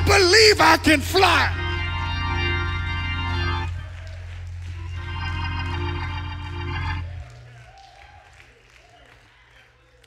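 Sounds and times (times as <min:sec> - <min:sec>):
church organ chords: 0:00.0 - 0:07.6.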